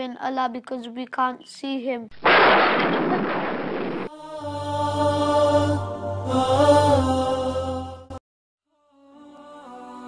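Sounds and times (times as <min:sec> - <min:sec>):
chant-like vocals: 0:04.1 - 0:10.0.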